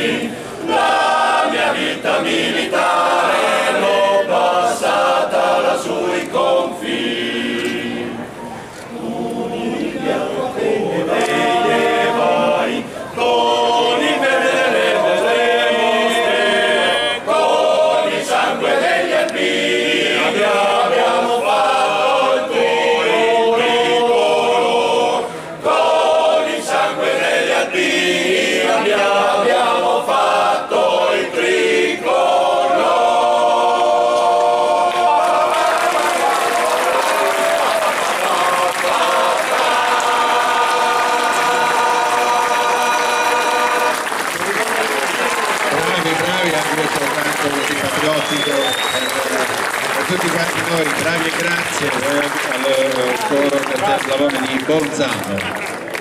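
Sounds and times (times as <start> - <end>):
men's choir singing a cappella: 0.0 - 44.4
audience applause: 34.8 - 56.0.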